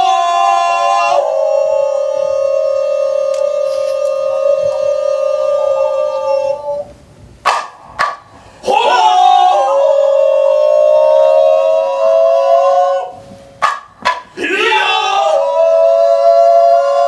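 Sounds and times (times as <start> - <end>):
long sustained vocal call: 0.0 - 6.9, 8.6 - 13.4, 14.4 - 17.0.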